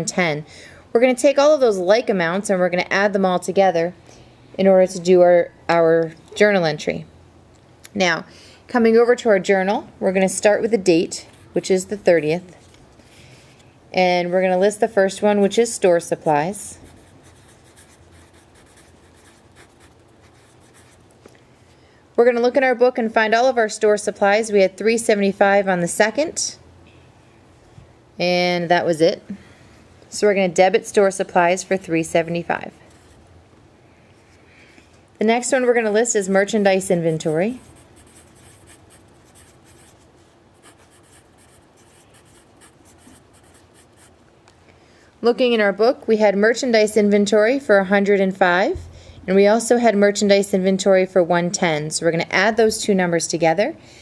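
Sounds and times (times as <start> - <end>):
pen scratching on paper: 16.8 - 21.0, 36.4 - 44.1
pencil writing on paper: 16.9 - 21.0.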